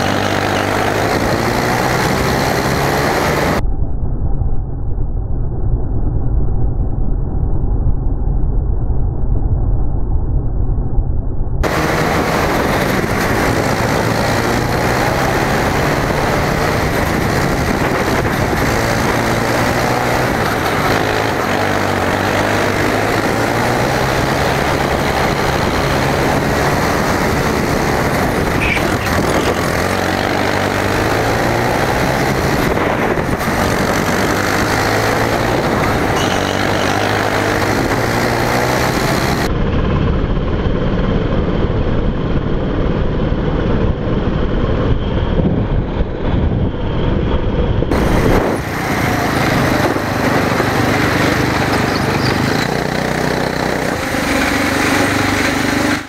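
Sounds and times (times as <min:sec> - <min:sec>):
go-kart engine: 0:00.0 - 0:03.6, 0:11.6 - 0:56.0.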